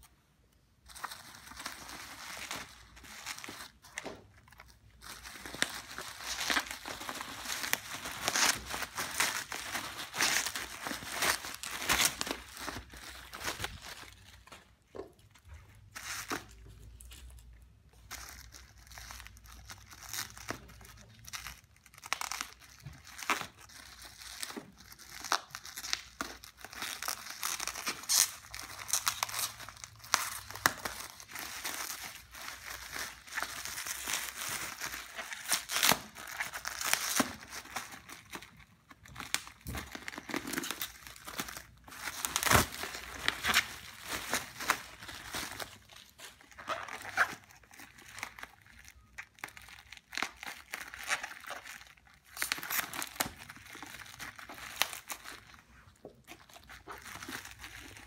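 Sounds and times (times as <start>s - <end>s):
bubble wrap crinkling: 0.0s - 58.0s.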